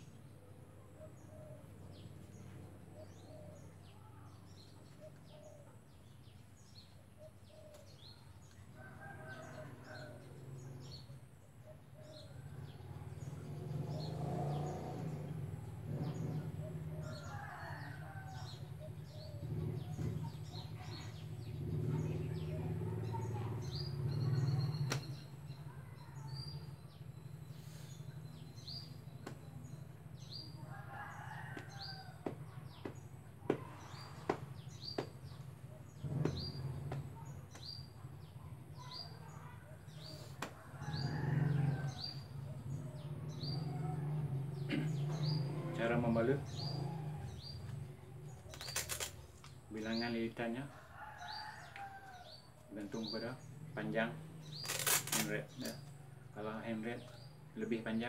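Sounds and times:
small birds chirping: 0:00.0 - 0:58.0.

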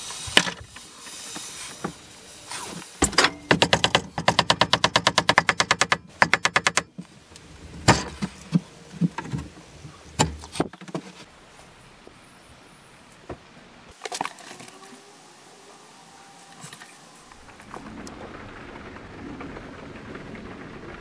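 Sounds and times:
hot metal hissing on wood: 0:00.0 - 0:05.1, 0:14.5 - 0:17.8.

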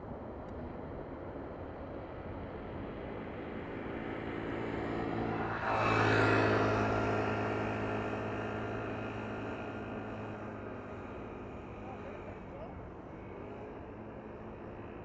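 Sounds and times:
jet engines roaring with whine: 0:00.0 - 0:15.0.

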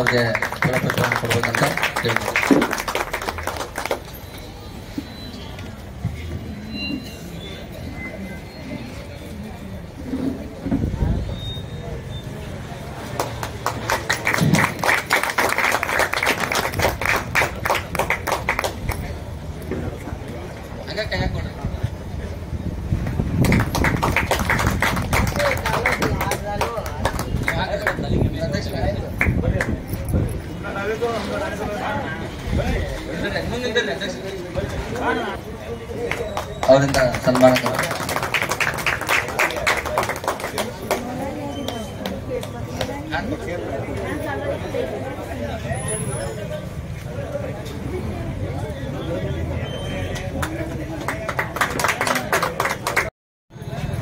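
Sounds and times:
crowd clapping: 0:00.0 - 0:04.4, 0:13.0 - 0:19.3, 0:23.0 - 0:29.9, 0:35.9 - 0:43.1, 0:50.1 - 0:53.1.

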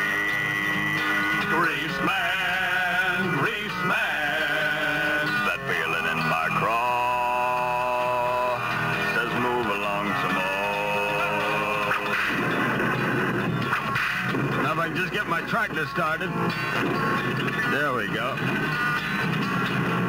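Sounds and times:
man singing with vibrato: 0:00.0 - 0:12.4
guitar: 0:00.0 - 0:20.0.

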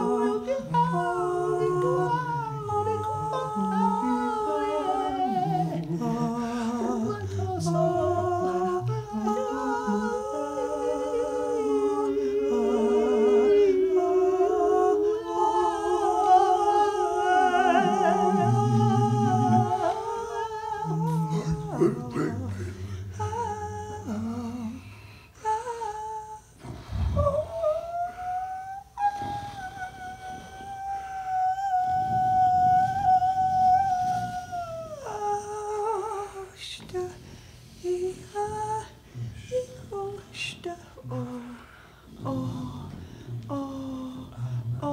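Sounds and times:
wordless improvised singing voices: 0:00.0 - 0:44.9
voice holding long high note: 0:27.2 - 0:35.3.

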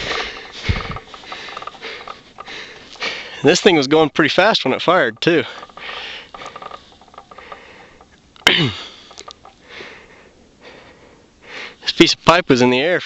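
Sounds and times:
person breathing and sniffing: 0:00.0 - 0:03.4.

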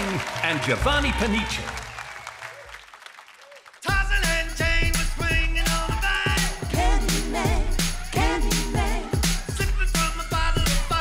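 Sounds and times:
studio audience applause: 0:00.0 - 0:09.4.

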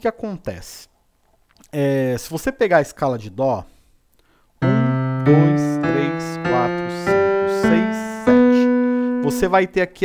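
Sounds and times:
electronic keyboard piano notes: 0:04.6 - 0:10.0.

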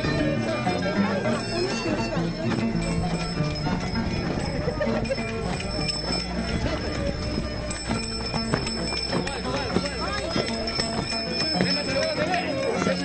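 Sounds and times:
crowd voices: 0:00.0 - 0:13.0
dancers' rhythmic stepping: 0:00.0 - 0:13.0
strummed strings: 0:00.0 - 0:13.0.

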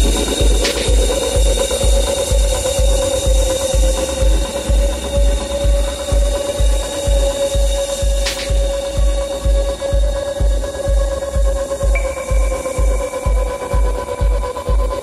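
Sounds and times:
clicking mechanical percussion: 0:00.0 - 0:12.9
held synth tone: 0:00.0 - 0:15.0
techno kick drum: 0:00.0 - 0:15.0.

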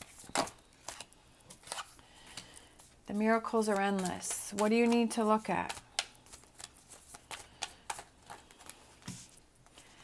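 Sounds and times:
cards being shuffled: 0:00.0 - 0:09.4.

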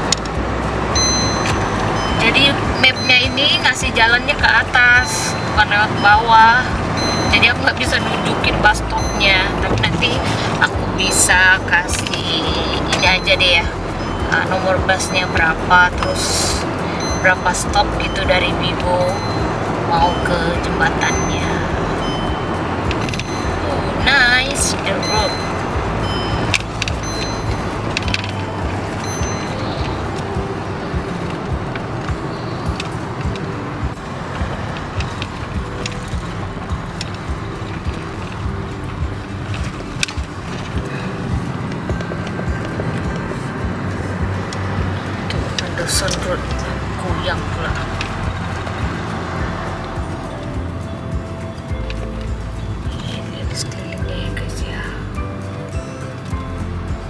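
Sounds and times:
car engine and road rumble: 0:00.0 - 0:57.0
music playing: 0:00.0 - 0:57.0.

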